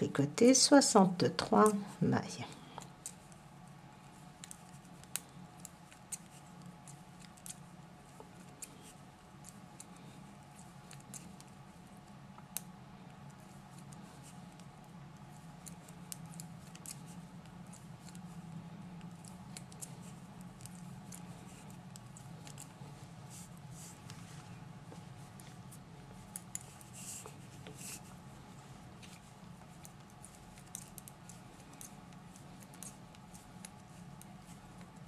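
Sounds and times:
faint low hum: 0:00.0 - 0:35.0.

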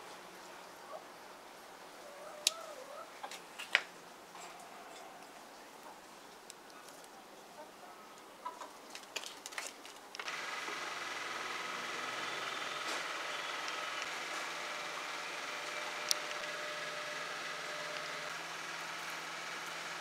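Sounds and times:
machine hum with high whine: 0:10.2 - 0:20.0.

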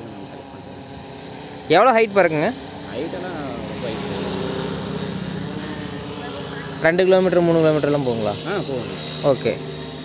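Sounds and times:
drone propellers humming: 0:00.0 - 0:10.0.

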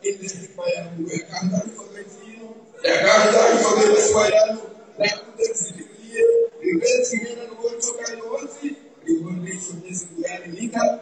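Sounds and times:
man speaking through pa system: 0:00.0 - 0:11.0.

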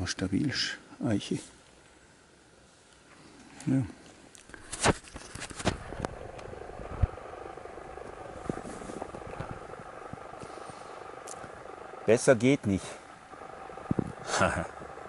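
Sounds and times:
faint ticks: 0:08.0 - 0:11.7
soft hiss of pipe drawing: 0:08.3 - 0:14.4.

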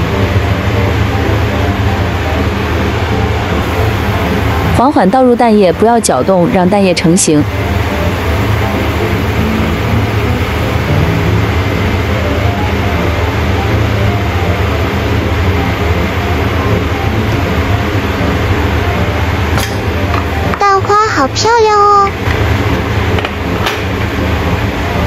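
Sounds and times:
constant low rumble: 0:00.0 - 0:25.0.

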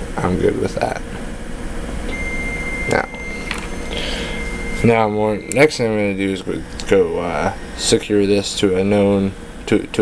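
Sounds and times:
low room hum: 0:00.0 - 0:10.0
high electronic tone: 0:02.0 - 0:09.3.

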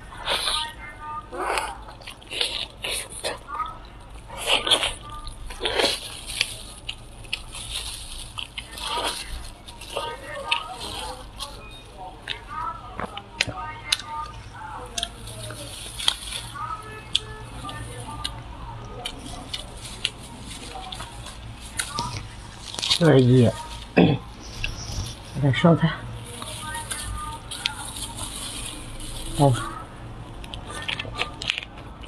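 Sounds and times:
wet chewing and sucking: 0:00.1 - 0:23.1, 0:26.1 - 0:32.0.

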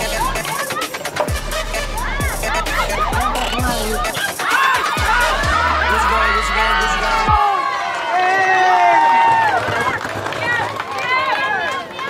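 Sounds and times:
high voices calling in sliding tones: 0:00.0 - 0:07.3.

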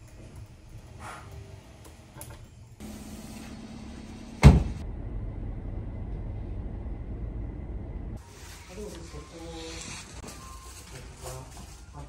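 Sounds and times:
car door shutting: 0:04.3 - 0:04.8.

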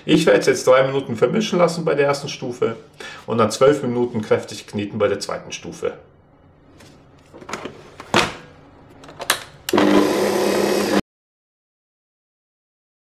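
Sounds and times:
mixer motor humming: 0:09.7 - 0:11.0.

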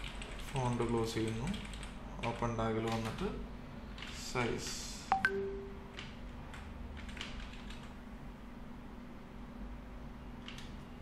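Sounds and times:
computer keyboard keystrokes: 0:00.0 - 0:03.2, 0:05.2 - 0:07.9, 0:10.4 - 0:10.8
steady low hum: 0:00.0 - 0:11.0.

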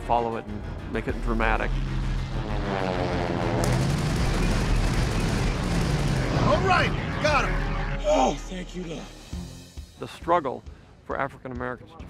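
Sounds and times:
propeller plane flying past: 0:01.8 - 0:06.5
machine-gun fire: 0:03.6 - 0:07.4.

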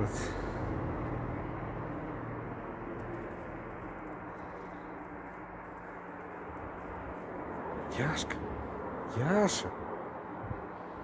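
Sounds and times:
faint hum: 0:00.0 - 0:11.0
low background rumble: 0:00.0 - 0:11.0.

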